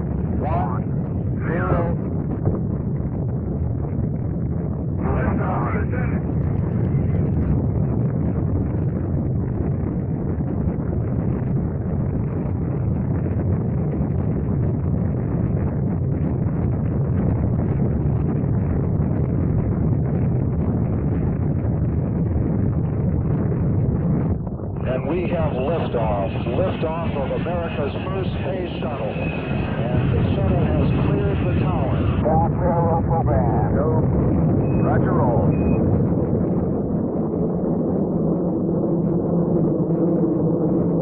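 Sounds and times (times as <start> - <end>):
rocket engines rumbling: 0.0 - 41.0.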